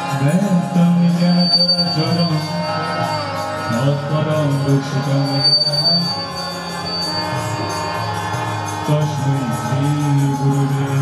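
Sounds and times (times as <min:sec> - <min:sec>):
men chanting: 0:00.0 - 0:11.0
violin accompaniment: 0:00.0 - 0:11.0.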